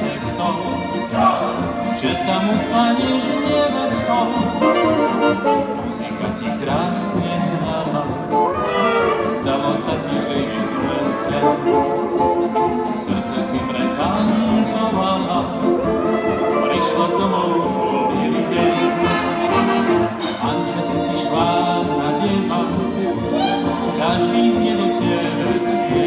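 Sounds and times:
jazz dance orchestra playing: 0.0 - 26.0.

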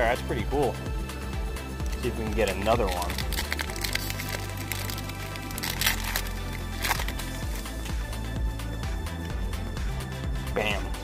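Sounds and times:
background music: 0.0 - 11.0
foil wrapper crinkling and tearing: 1.8 - 7.6.

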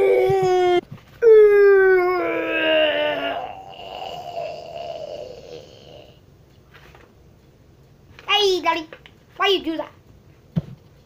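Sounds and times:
breathy moan: 0.0 - 6.2
child wailing whine: 0.0 - 6.2.

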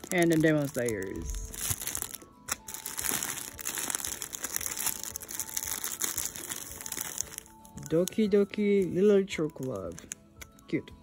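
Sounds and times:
plastic bags crinkling: 0.0 - 10.7.

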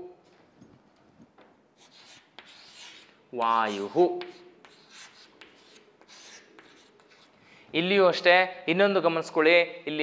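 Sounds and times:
chalk scratching on chalkboard: 1.8 - 7.4.

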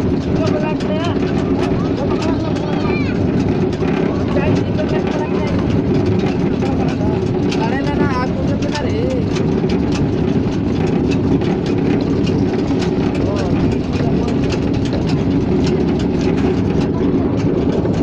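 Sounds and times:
dense clicking and crackling: 0.0 - 18.0
machine mechanical rumble: 0.0 - 18.0.

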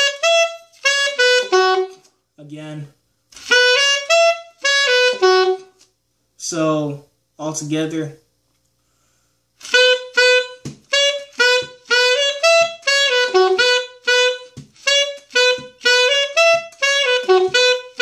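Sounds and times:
alto saxophone melody: 0.0 - 2.2, 3.4 - 5.9, 9.6 - 18.0.

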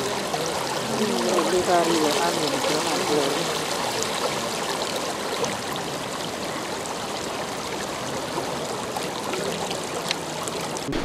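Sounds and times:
river rushing: 0.0 - 11.0
small waves lapping at bank: 0.0 - 11.0.

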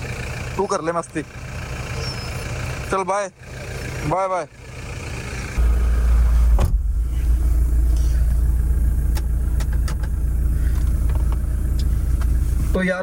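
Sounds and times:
car engine idling: 0.0 - 13.0
car door shutting: 6.3 - 7.3, 9.1 - 12.4.

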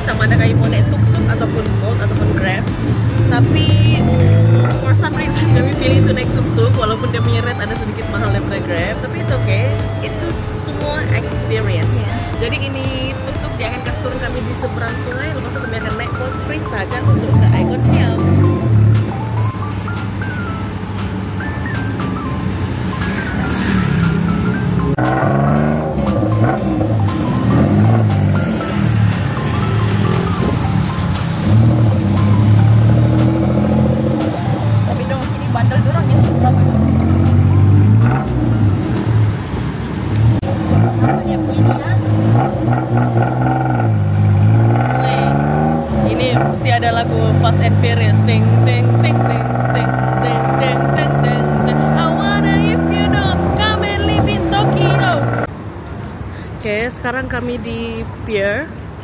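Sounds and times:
tuk-tuk engine revving: 0.0 - 59.0.

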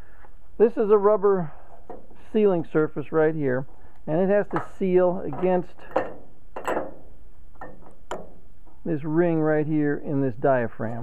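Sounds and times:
light ticks of metal parts: 3.7 - 8.9.

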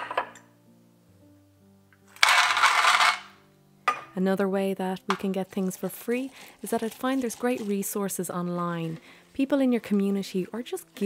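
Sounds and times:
soft background music: 0.0 - 11.0
nuts rattling in metal tin: 2.1 - 3.4.

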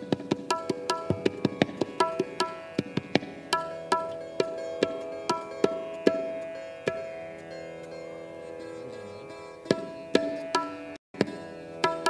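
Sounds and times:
sitar playing slow melody: 0.7 - 12.0.

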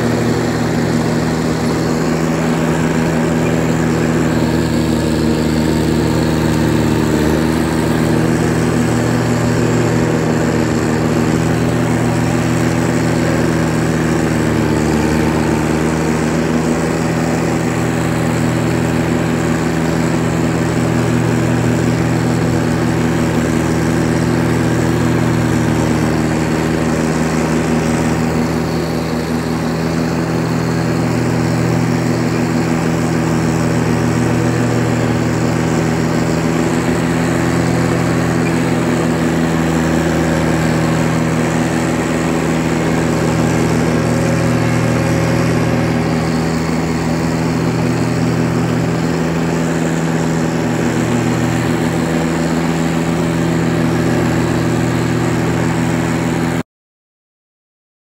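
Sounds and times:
diesel mower engine running: 0.0 - 56.6.

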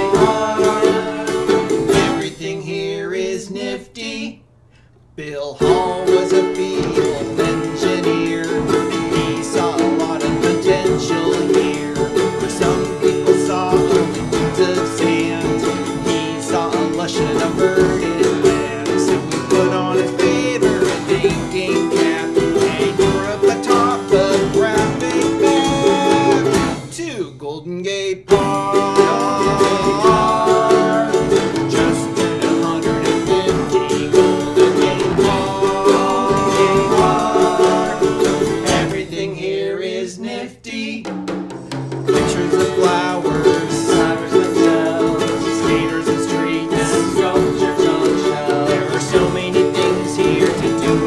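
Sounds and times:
acoustic band playing a song: 0.0 - 3.3, 5.6 - 27.0, 28.3 - 40.4, 41.0 - 51.0.

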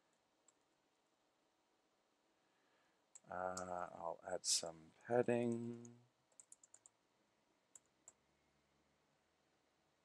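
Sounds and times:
faint keyboard keystrokes: 5.5 - 7.0.

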